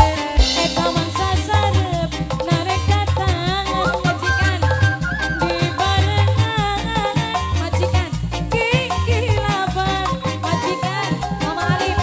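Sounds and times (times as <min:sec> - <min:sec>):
loud drum beat: 0:00.0 - 0:12.0
wavering melody: 0:03.7 - 0:06.3, 0:10.7 - 0:12.0.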